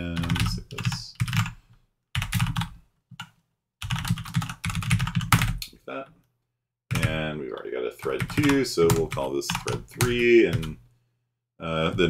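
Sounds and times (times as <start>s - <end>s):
computer keyboard typing: 0.1s - 1.6s, 2.2s - 5.7s, 6.9s - 7.2s, 8.0s - 10.8s.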